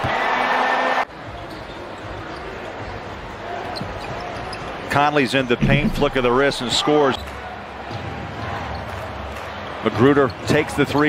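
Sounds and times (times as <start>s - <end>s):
arena crowd cheering: 0.0s - 1.1s, 5.8s - 11.0s
players moving: 5.6s - 6.9s.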